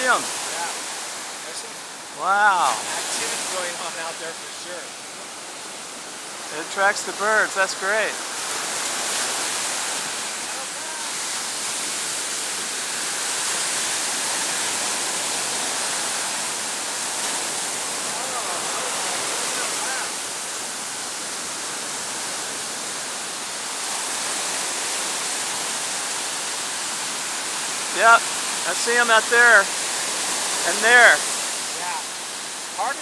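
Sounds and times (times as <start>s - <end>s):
ocean surf breaking on beach: 0.0s - 33.0s.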